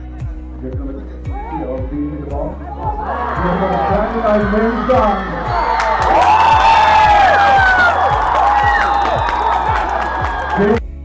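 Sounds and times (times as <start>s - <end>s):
background music with steady beat: 0.0s - 11.0s
crowd cheering and whooping: 2.7s - 10.8s.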